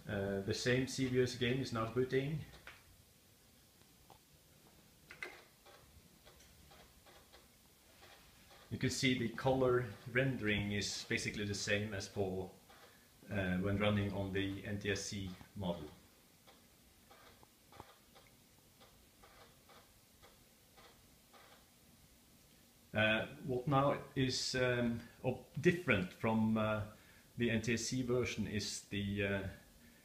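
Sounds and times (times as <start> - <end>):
faint regular ticking: 0.9 - 21.8
faint irregular clicks: 1.8 - 2.9, 3.7 - 8.8, 15.3 - 21.8.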